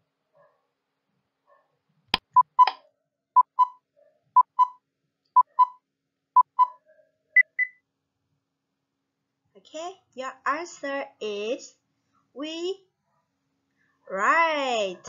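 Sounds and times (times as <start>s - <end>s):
short timer beeps: 2.2s - 2.7s, 4.4s - 4.8s, 5.4s - 5.8s, 6.4s - 6.8s, 7.4s - 7.8s.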